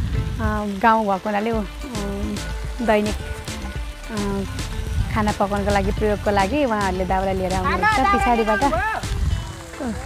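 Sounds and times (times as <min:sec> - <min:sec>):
wind rumbling on microphone: 0:00.0 - 0:00.8, 0:01.5 - 0:10.0
woman speaking: 0:00.4 - 0:03.2, 0:04.1 - 0:04.5, 0:05.1 - 0:08.8.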